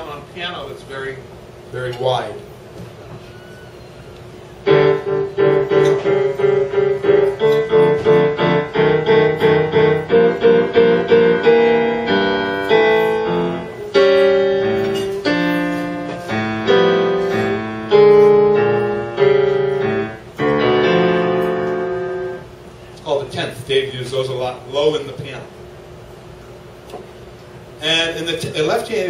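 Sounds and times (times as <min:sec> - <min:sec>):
grand piano chords: 0:04.5 - 0:23.7.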